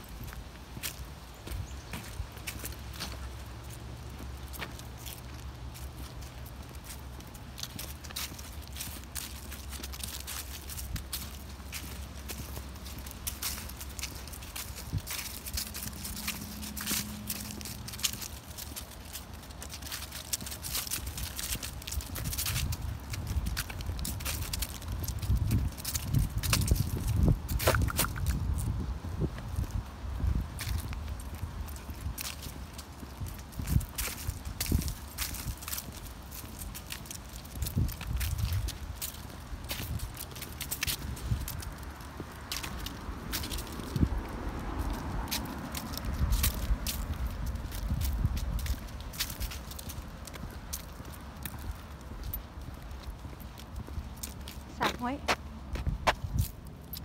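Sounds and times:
footsteps on leaves and twigs: 0.0 - 57.0.

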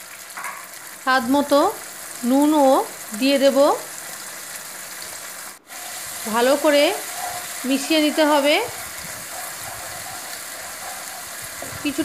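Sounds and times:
paste sizzling in hot oil: 0.0 - 12.0
spatula scraping a pan: 5.7 - 12.0.

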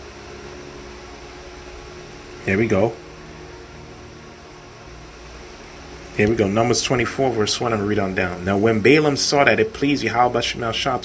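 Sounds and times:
faint low hum: 0.0 - 11.0
steady background hiss: 0.0 - 11.0.

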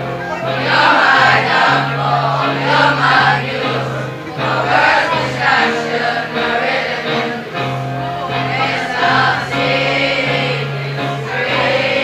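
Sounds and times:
guitar playing low notes: 0.0 - 12.0
children singing in chorus: 0.4 - 7.6, 8.3 - 12.0.

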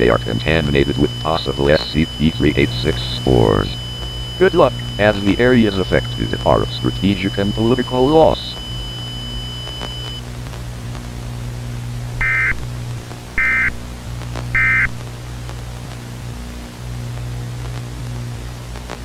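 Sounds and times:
short bursts of data tones: 0.0 - 10.2, 12.2 - 12.6, 13.4 - 13.8, 14.5 - 15.0
low steady drone: 0.0 - 19.0
static hiss: 0.0 - 19.0.

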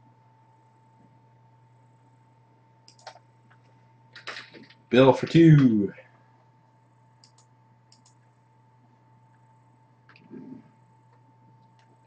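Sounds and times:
computer mouse clicks: 2.8 - 3.6, 7.2 - 8.2, 10.1 - 10.5.

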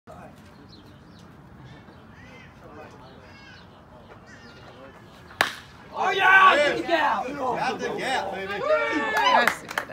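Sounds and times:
baseball bat cracking ball: 5.3 - 5.9.

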